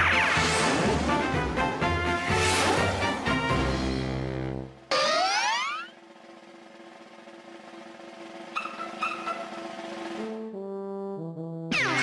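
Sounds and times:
orchestral music: 0.0s - 4.8s
cartoon boing glide: 4.9s - 6.0s, 10.3s - 12.0s.

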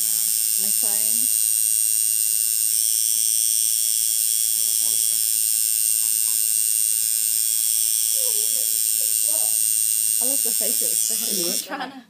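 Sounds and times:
tattoo machine buzzing: 0.0s - 11.8s.

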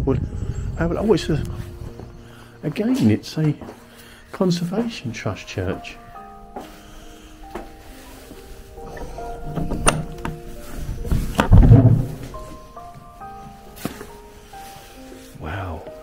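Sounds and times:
slow music of held notes: 0.0s - 16.0s
heavy wooden door thuds: 9.3s - 12.4s.

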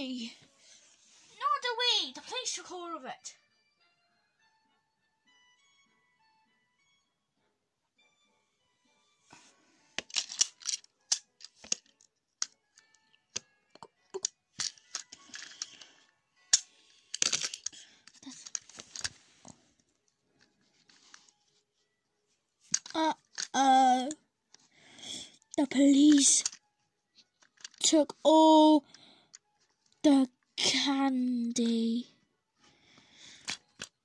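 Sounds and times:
faint music: 0.0s - 34.0s
toy trains clicking and clacking: 10.0s - 13.4s, 14.2s - 19.1s, 22.7s - 23.7s, 25.4s - 26.6s, 27.4s - 28.2s.

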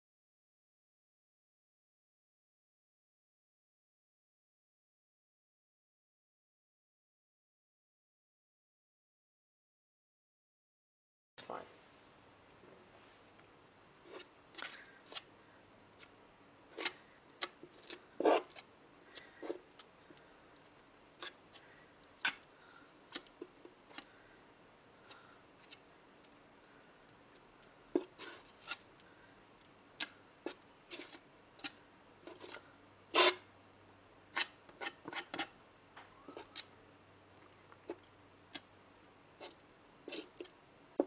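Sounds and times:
palette knife scraping: 16.7s - 19.9s, 21.2s - 22.5s, 27.3s - 28.9s, 30.0s - 33.5s, 34.3s - 35.5s, 36.2s - 36.7s, 39.4s - 40.5s.

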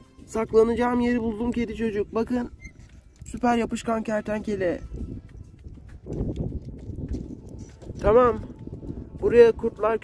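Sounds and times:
wind rumbling on microphone: 0.3s - 10.0s.

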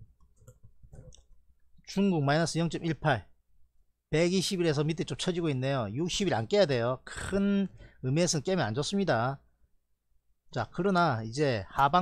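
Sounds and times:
computer mouse clicks: 0.1s - 1.4s.

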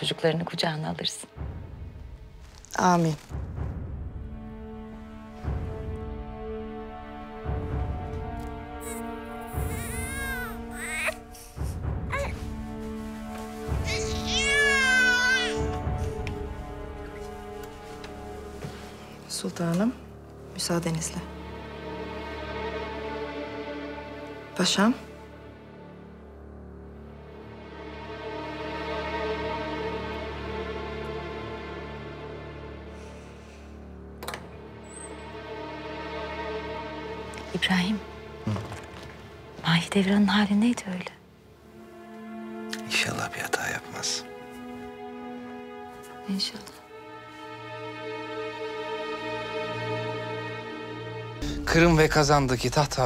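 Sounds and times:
soft sustained background score: 0.0s - 38.4s, 39.1s - 53.0s
soft background music: 0.0s - 53.0s
newborn baby whimpering cries: 8.8s - 11.3s, 13.9s - 15.7s.

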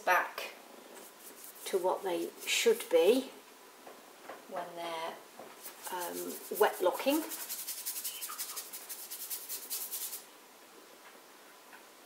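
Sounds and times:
paintbrush scrubbing canvas: 1.0s - 2.6s, 5.6s - 10.2s.

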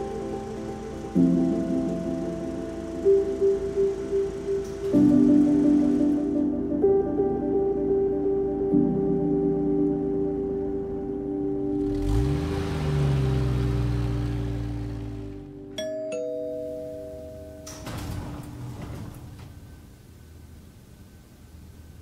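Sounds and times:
elevator doors sliding open: 0.0s - 6.5s, 17.2s - 20.2s
soft background music: 0.0s - 19.3s
elevator two-tone chime: 15.7s - 19.2s.

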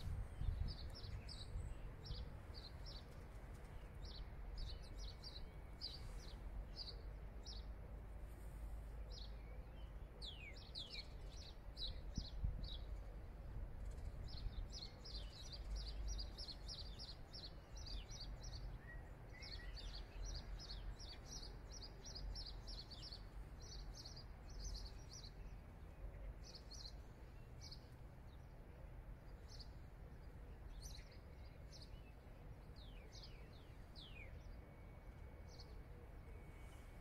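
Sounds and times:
low rumble of background noise: 0.0s - 37.0s
bird chirping: 13.8s - 28.5s, 29.2s - 37.0s.

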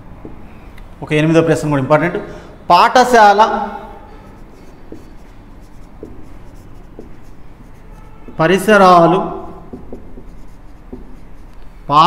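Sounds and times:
marker pen on whiteboard: 0.0s - 1.7s, 3.0s - 12.0s.

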